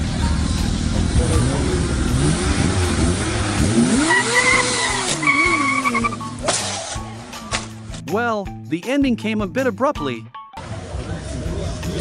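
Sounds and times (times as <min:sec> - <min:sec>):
engines revving: 0:00.0 - 0:07.4.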